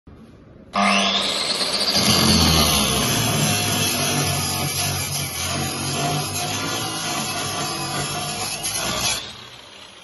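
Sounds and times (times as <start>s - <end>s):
angle grinder cutting steel: 0.8s - 10.0s.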